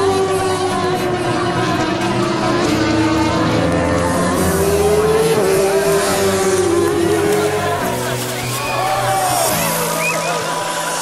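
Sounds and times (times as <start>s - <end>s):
racing motorcycle engine passing: 0.0s - 9.6s.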